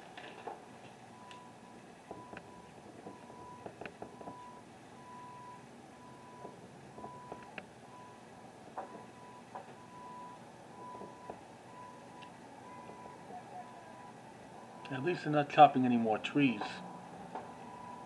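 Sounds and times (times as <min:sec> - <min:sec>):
reversing alarm beeping: 0:01.1 - 0:08.2, 0:08.8 - 0:15.3, 0:16.4 - 0:18.0.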